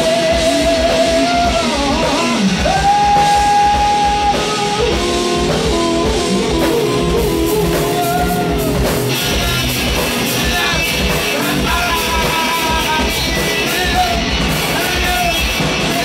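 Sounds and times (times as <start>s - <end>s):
rock band with guitar and drums: 0.0s - 16.0s
lead line of held notes: 2.7s - 14.8s.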